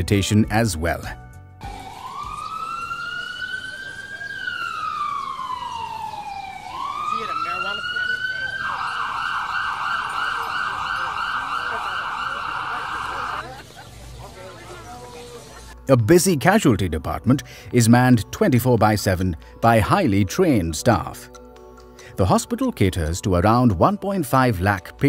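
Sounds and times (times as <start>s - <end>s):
ambulance siren wailing: 1.6s - 13.6s.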